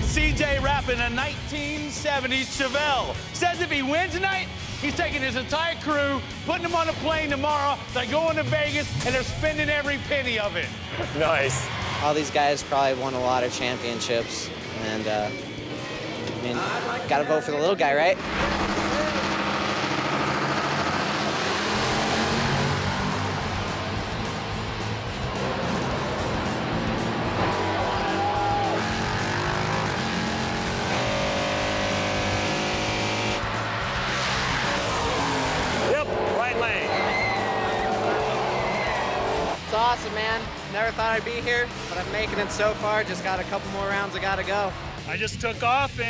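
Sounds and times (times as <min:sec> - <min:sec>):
drag racing cars at full throttle: 0:00.0 - 0:16.6, 0:18.1 - 0:46.0
background music: 0:00.0 - 0:46.0.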